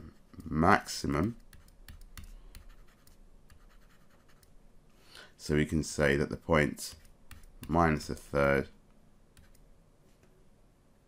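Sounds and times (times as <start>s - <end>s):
stylus scratching on touchscreen: 1.2s - 4.5s, 6.8s - 8.0s.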